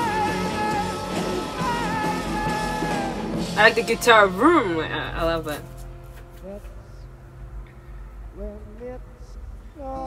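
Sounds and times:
faint steady hum: 0.0s - 10.0s
woman saying a word: 3.6s - 5.7s.

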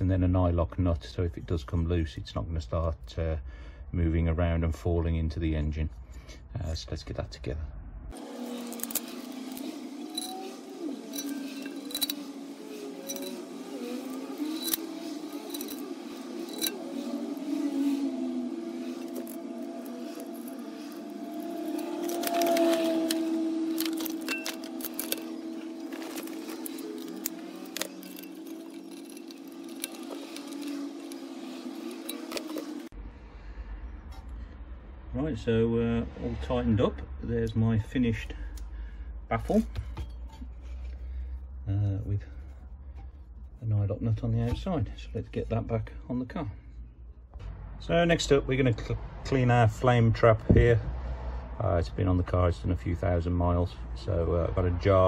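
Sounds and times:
small metal hardware clinking: 8.4s - 17.5s, 18.8s - 32.9s.

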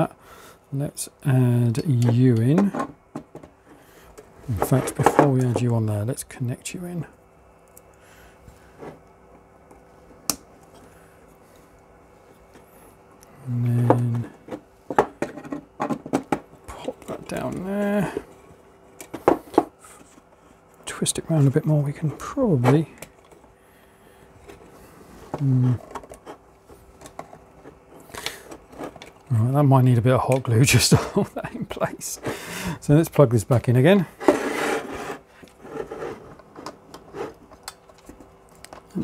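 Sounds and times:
plastic parts clicking and knocking: 13.8s - 17.6s, 25.3s - 26.4s, 27.0s - 29.3s, 36.4s - 38.9s.

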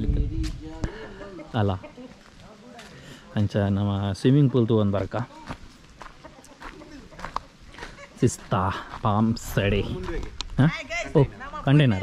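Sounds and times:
chicken clucking: 0.9s - 2.4s, 4.2s - 8.5s.

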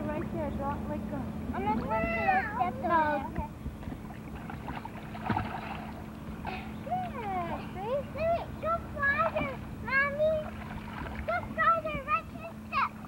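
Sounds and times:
water splashing in a pool: 3.8s - 7.4s, 9.0s - 13.0s.

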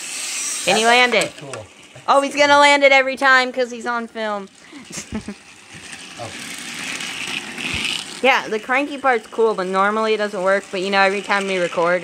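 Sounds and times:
toy train motor whirring: 0.0s - 12.0s.

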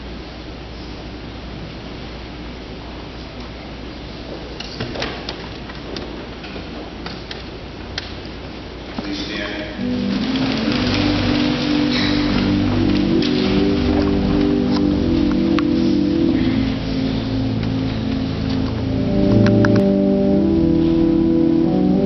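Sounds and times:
people shuffling and rustling: 2.8s - 22.0s
church organ chords: 8.5s - 22.0s.

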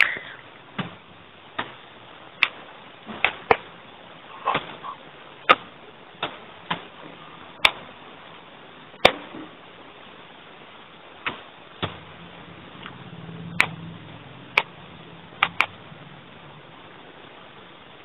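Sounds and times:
steady low hiss: 0.0s - 18.0s
sharp clicks and taps: 15.4s - 15.8s.

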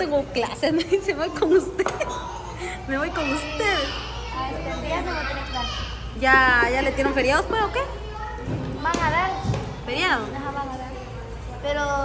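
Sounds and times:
children chattering: 0.8s - 12.0s.

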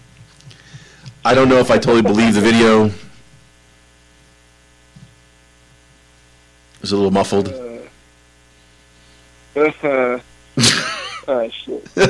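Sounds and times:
steady electrical hum: 0.0s - 12.0s
man speaking: 1.2s - 3.2s, 6.8s - 8.0s, 9.6s - 12.0s.

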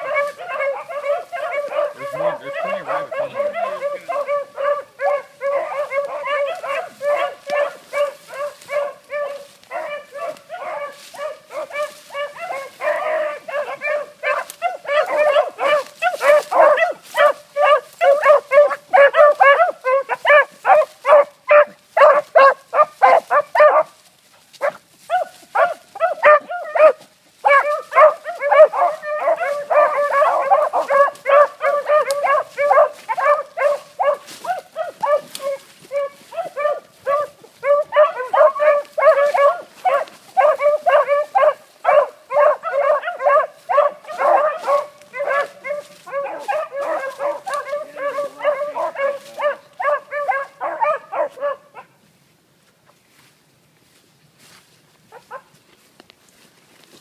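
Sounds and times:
beagles baying: 0.0s - 51.9s.

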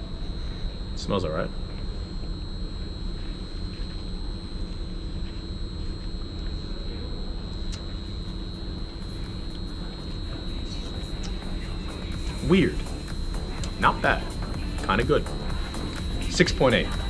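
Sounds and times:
thin high-pitched whine: 0.0s - 17.0s.

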